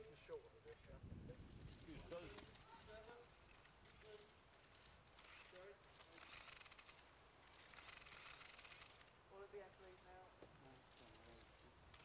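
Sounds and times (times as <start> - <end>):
camera shutters clicking: 5.1 - 9.1.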